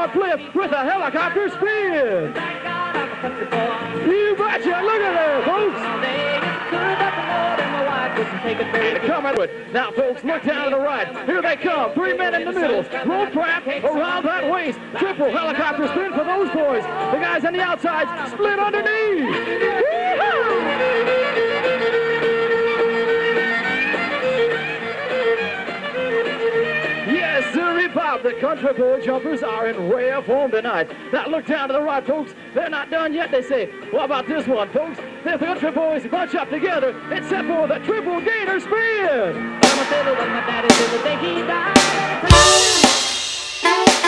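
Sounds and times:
country fiddle music: 0:00.0 - 0:44.0
music playing: 0:02.1 - 0:10.0, 0:39.5 - 0:44.0
bass line: 0:39.6 - 0:44.0.

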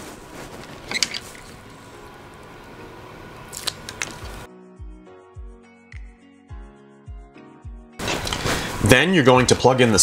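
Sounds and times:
room tone hiss: 0:00.0 - 0:04.5
hands handling plastic parts: 0:00.3 - 0:01.6.

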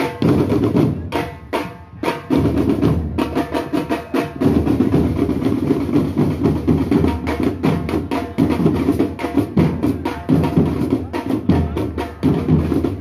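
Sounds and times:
snare drums: 0:00.0 - 0:13.0
bass drums: 0:04.4 - 0:13.0.

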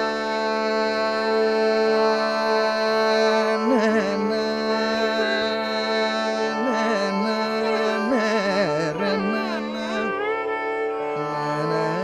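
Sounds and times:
man singing: 0:00.0 - 0:12.0
violin accompaniment: 0:00.0 - 0:12.0.

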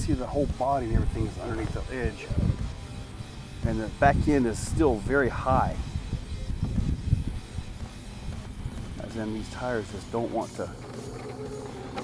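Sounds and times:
tires scraping over rock: 0:00.0 - 0:12.0
low rumble of rc crawler: 0:00.5 - 0:12.0.

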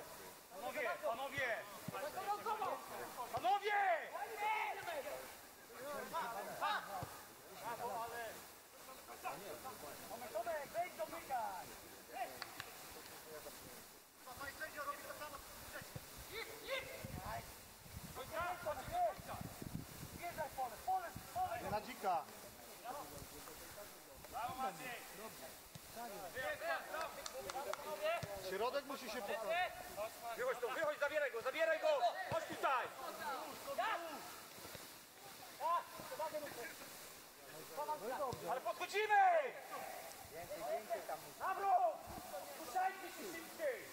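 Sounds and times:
people calling and shouting: 0:00.0 - 0:43.9.

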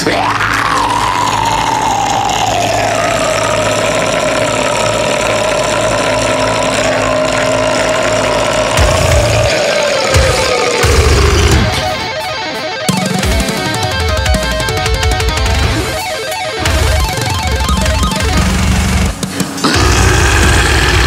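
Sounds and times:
heavy drums and bass: 0:00.0 - 0:21.0
low drone: 0:00.0 - 0:21.0
metal scream: 0:00.0 - 0:21.0.

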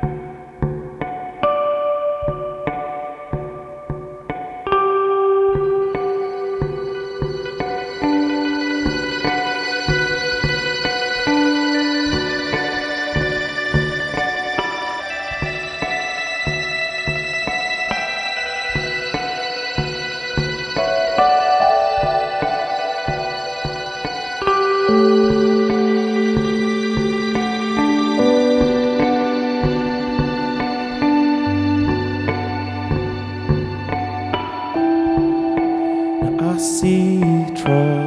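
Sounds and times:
guitar picking single notes: 0:00.0 - 0:38.0.

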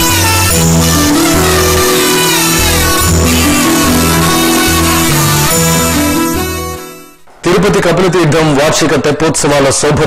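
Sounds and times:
instrumental music: 0:00.0 - 0:07.4.

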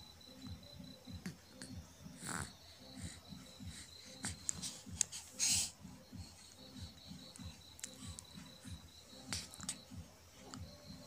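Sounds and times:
faint high whine: 0:00.0 - 0:11.0
low rhythmic pulsing: 0:00.0 - 0:11.0
breathy huff: 0:02.2 - 0:06.6.

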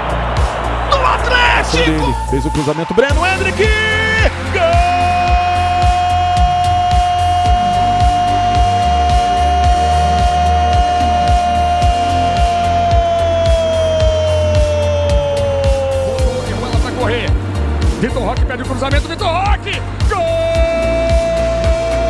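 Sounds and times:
background music with steady beat: 0:00.0 - 0:22.0
commentator's long goal cry: 0:03.6 - 0:16.5.

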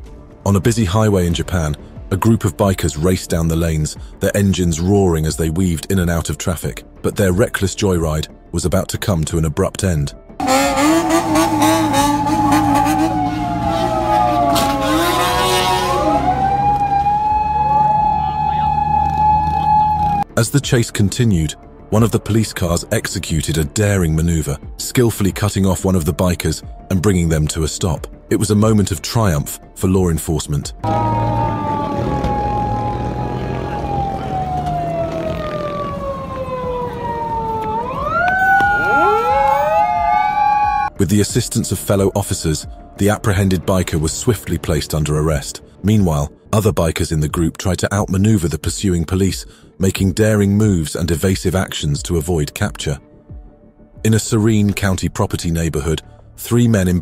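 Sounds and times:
police sirens wailing: 0:10.4 - 0:20.2, 0:30.8 - 0:41.0
car and motorcycle engines running: 0:30.9 - 0:37.0.

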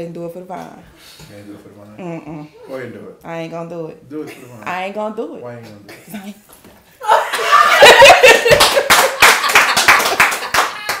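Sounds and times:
hand clapping: 0:08.4 - 0:11.0.

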